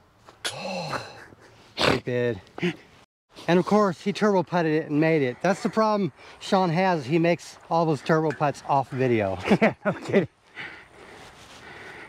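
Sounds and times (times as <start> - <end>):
man groaning: 0.5 - 1.3.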